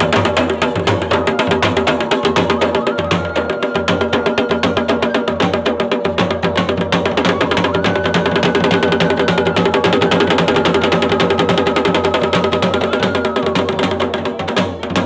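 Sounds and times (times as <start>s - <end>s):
drums fast dense rhythm: 0.0s - 15.0s.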